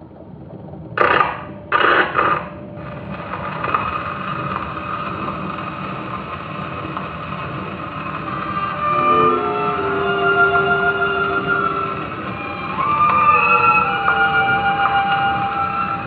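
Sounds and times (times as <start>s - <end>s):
record surface hiss: 0.0s - 16.0s
stylus scraping on record: 1.0s - 16.0s.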